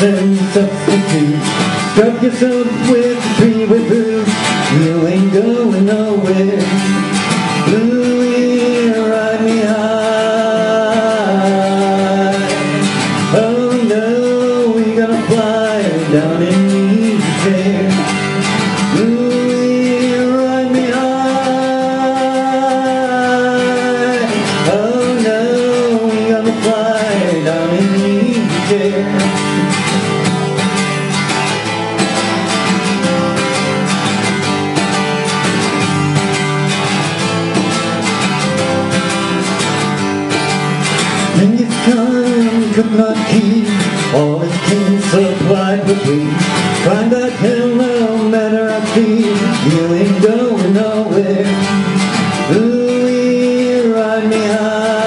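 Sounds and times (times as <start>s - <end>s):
man singing: 0.0s - 29.9s, 41.1s - 55.0s
strummed acoustic guitar: 0.0s - 55.0s.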